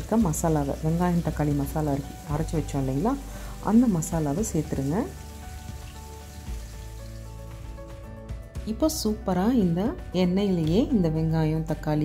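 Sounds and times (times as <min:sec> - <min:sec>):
music with slow held notes: 0:00.0 - 0:12.0.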